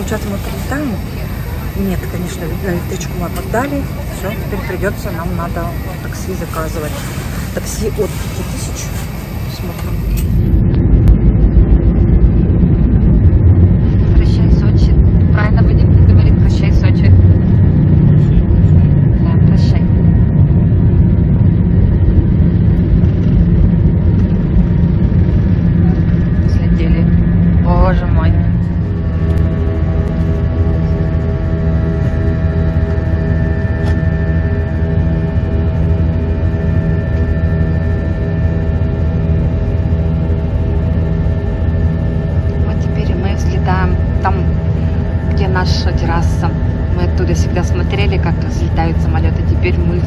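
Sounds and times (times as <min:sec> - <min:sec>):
airliner engines roaring: 0:00.0 - 0:50.0.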